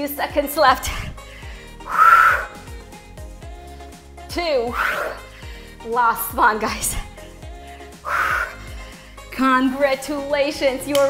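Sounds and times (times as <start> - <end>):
workout music with drum beat: 0.0 - 11.0.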